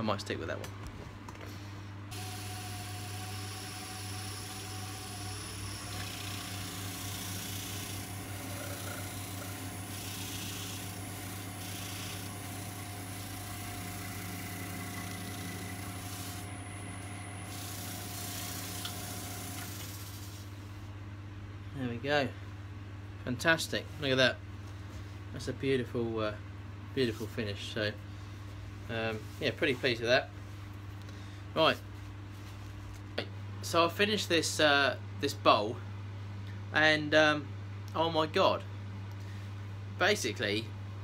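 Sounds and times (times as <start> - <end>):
wood lathe motor whining: 2.1 - 20.5.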